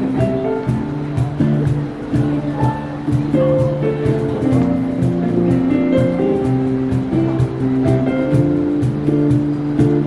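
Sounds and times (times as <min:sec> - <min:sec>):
bass line: 0:00.0 - 0:10.0
cajon beat: 0:00.0 - 0:10.0
guitar notes: 0:00.0 - 0:10.0
keyboard notes: 0:00.0 - 0:10.0.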